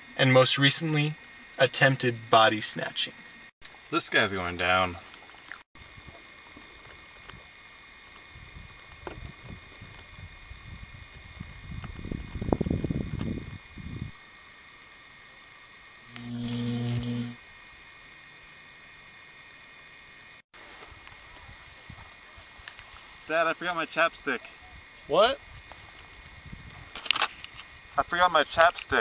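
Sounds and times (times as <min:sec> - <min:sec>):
low steady hum: 0:00.0 - 0:28.5
wind rumbling on microphone: 0:08.2 - 0:14.2, 0:24.6 - 0:27.0.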